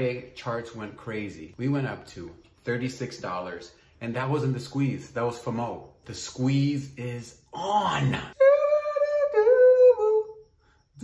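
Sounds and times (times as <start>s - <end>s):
man humming: 7.6s - 10.5s.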